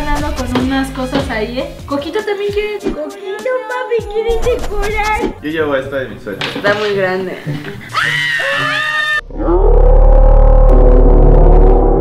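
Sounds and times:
deep drawn-out sound effect: 0:09.1 - 0:12.0.

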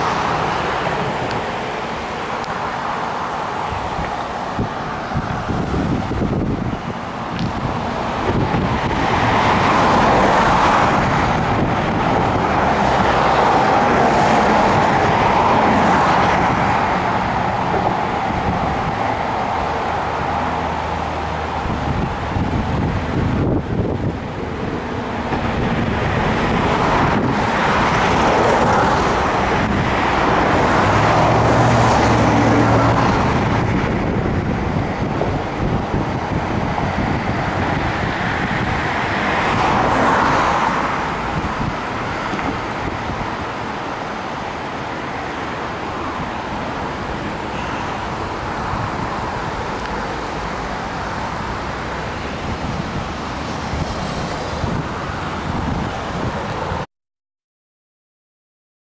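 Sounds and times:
engine hum: 0:00.0 - 0:56.9
road traffic passing: 0:00.0 - 0:56.9
steady rushing noise: 0:00.0 - 0:56.9.

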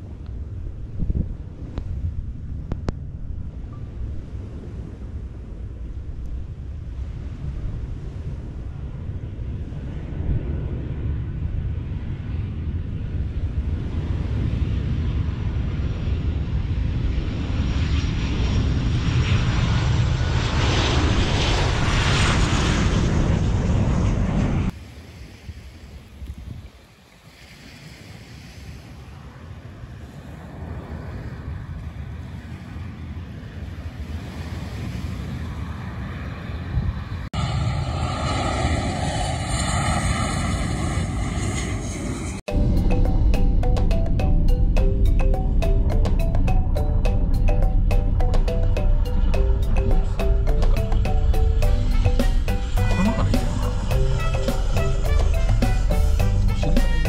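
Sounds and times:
airliner engines passing low: 0:00.0 - 0:57.0
wind: 0:00.0 - 0:57.0
music: 0:42.5 - 0:57.0.

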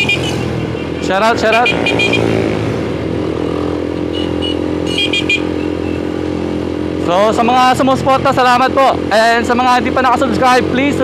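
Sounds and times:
motorcycle engine running steadily: 0:00.0 - 0:11.0.

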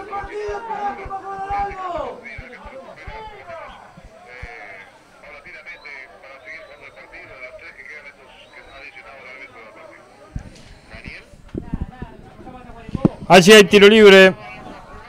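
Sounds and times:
faint shouts and calls: 0:00.0 - 0:11.4.

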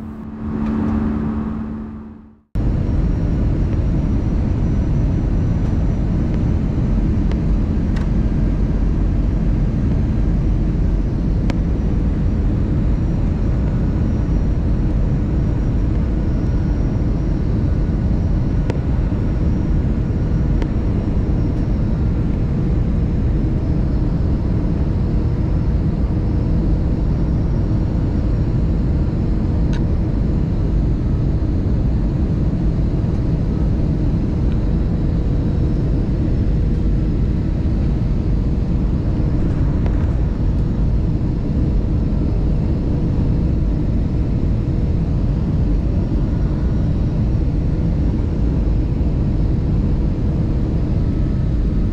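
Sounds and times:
airliner cabin rumble: 0:00.0 - 0:04.6, 0:30.4 - 0:51.9
faint steady hum: 0:00.0 - 0:51.9.

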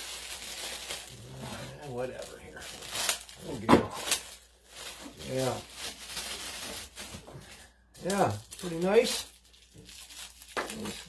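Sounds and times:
packaging rustling and scraping: 0:00.0 - 0:11.0.

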